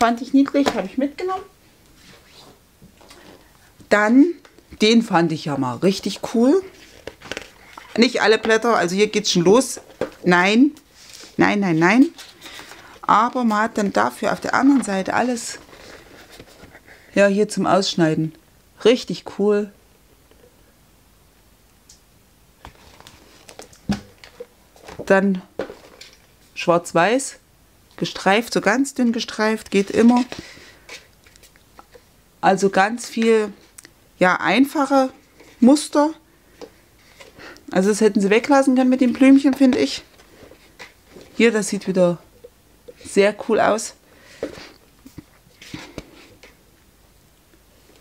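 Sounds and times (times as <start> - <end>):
paper sheets rustling: 6.1 - 8.7, 11.0 - 16.8, 22.6 - 26.2, 29.6 - 31.5.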